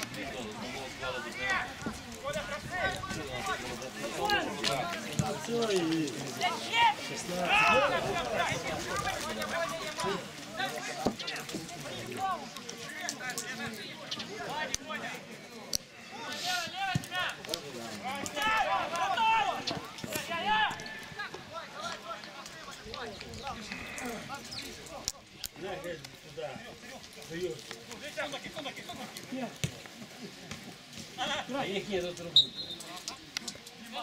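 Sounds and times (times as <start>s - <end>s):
players shouting: 0.0s - 27.1s, 31.0s - 34.0s.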